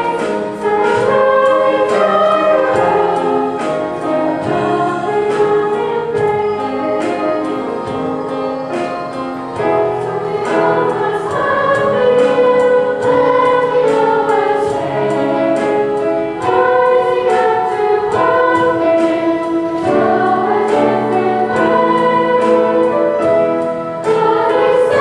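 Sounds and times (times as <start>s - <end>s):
children's choir singing: 0.0s - 25.0s
musical accompaniment with beat: 0.0s - 25.0s.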